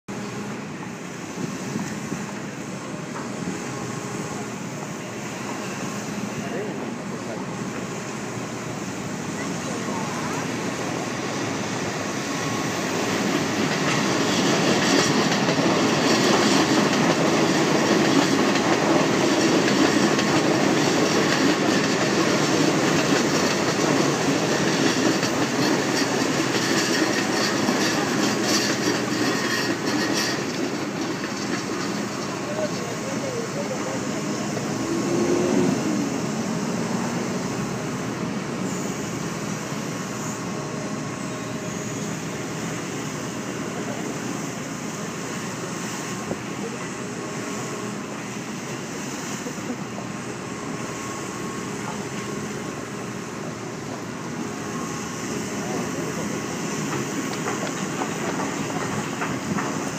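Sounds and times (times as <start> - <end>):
heavy rumble with rattling clatter: 13.4 - 36.4, 54.8 - 59.9.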